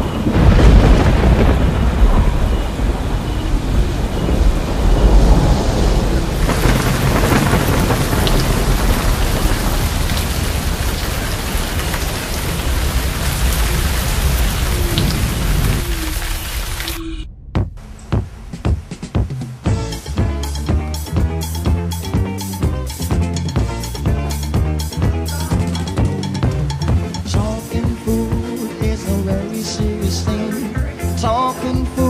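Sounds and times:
thunder rumbling: 0:00.0 - 0:19.8
heavy rain pouring: 0:00.0 - 0:32.0.

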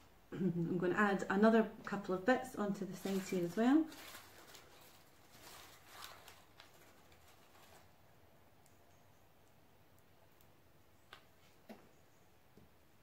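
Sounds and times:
dried herbs rustling: 0:02.5 - 0:08.5.

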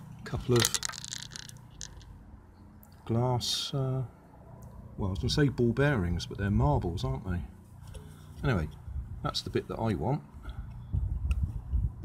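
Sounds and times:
glass marbles rolling on paving: 0:00.4 - 0:02.2.

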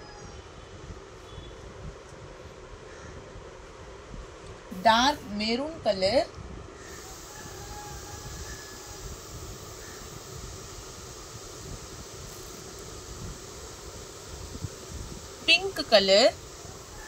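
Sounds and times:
even hiss: 0:04.7 - 0:06.2, 0:06.8 - 0:17.0.

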